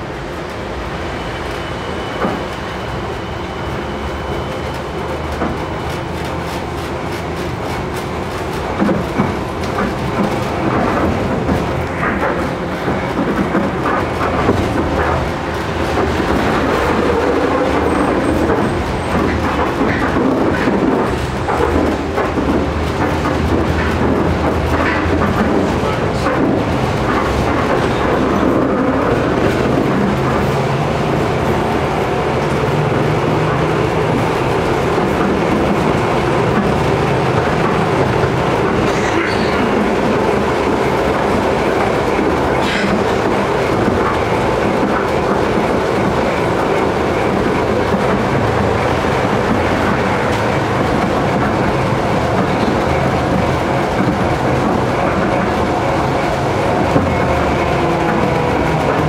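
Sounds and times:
tram low hum: 0.0s - 59.0s
wheels on rails: 0.0s - 59.0s.

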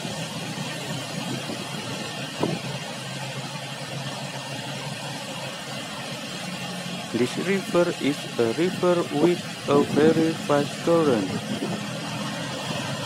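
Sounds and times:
river water rushing through rapids: 0.0s - 13.0s.

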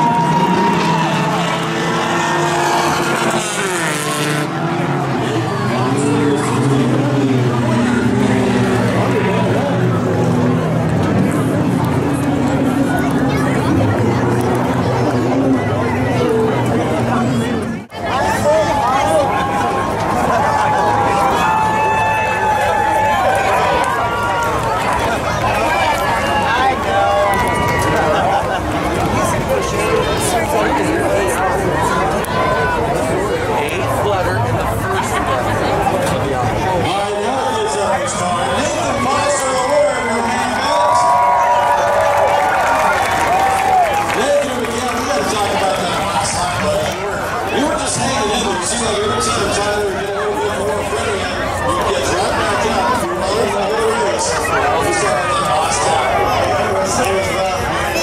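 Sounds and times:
race car engines revving: 0.0s - 58.0s
children calling and chattering: 4.6s - 58.0s.

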